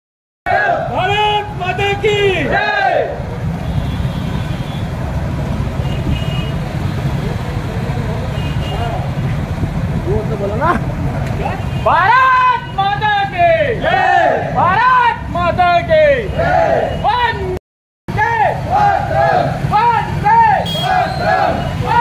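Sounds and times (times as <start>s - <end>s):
motorcycle engines rumbling: 0.5s - 22.0s
person shouting: 11.9s - 20.6s.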